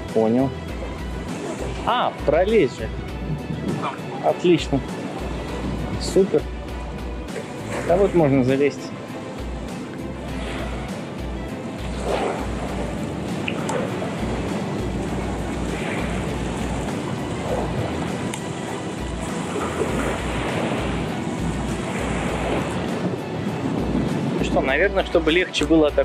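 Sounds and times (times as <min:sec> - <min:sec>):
steady outdoor rush: 0:00.0 - 0:26.0
wind buffeting microphone: 0:00.0 - 0:26.0.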